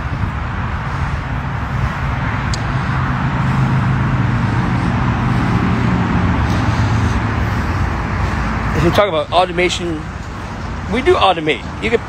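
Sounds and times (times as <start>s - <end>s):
traffic rushing haze: 0.0s - 12.0s
vehicle engine hum: 0.0s - 12.0s.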